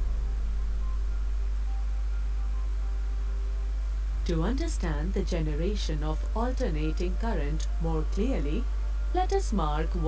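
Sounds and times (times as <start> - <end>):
electrical mains hum: 0.0 - 10.0
faint hiss: 0.0 - 10.0.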